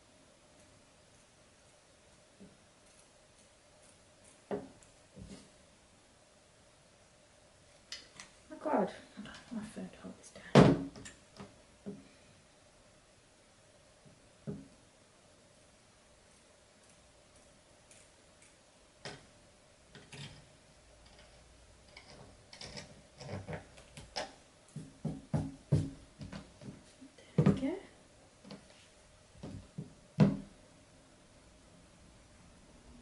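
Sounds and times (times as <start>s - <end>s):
scissors snipping fabric: 16.8s - 18.6s.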